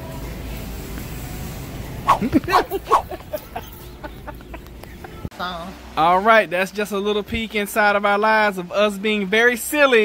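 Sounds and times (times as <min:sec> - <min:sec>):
low background hum: 0:00.3 - 0:06.0.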